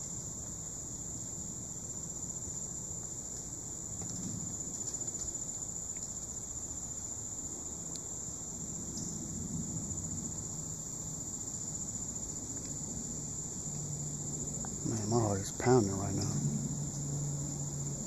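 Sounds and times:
insects trilling: 0:00.0 - 0:18.0.

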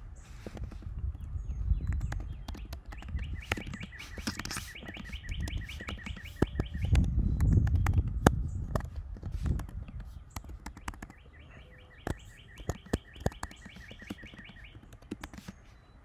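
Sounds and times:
bird chirping rapidly: 0:00.0 - 0:16.0
keyboard keys clicking: 0:01.9 - 0:08.2, 0:08.8 - 0:15.6.

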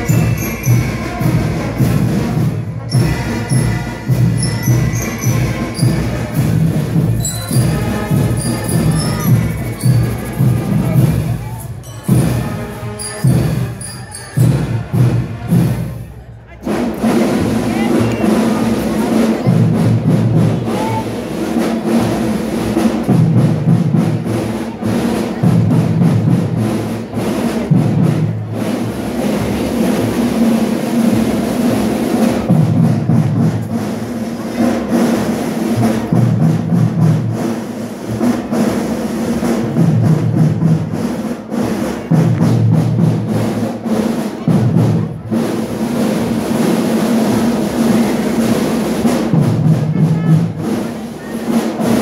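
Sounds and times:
snare and bass drum beat: 0:00.0 - 0:52.0.

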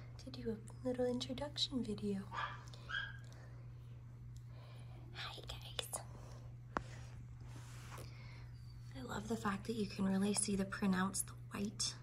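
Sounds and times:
steady low hum: 0:00.0 - 0:12.0
woman softly whispering: 0:05.1 - 0:06.1.

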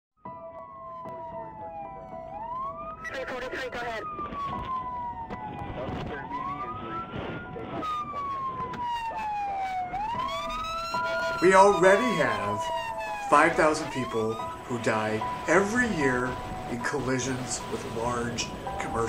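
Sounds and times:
siren wailing: 0:00.3 - 0:19.0.

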